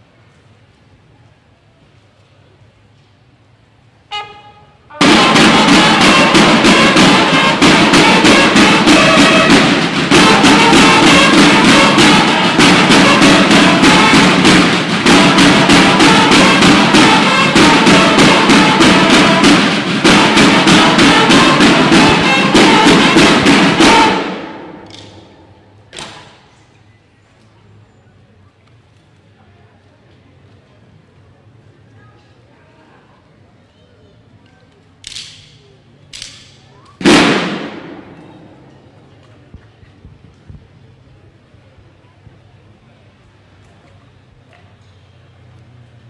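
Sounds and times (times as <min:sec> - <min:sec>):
drums and bugles playing a march: 0:04.1 - 0:26.4, 0:37.0 - 0:39.2.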